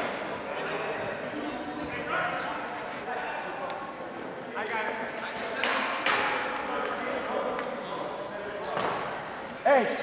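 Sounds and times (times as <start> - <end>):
voices echoing in a gymnasium: 0.0 - 10.0.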